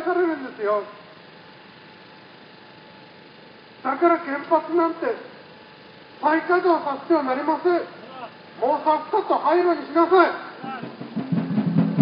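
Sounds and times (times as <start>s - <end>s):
street traffic hum and hiss: 0.0s - 12.0s.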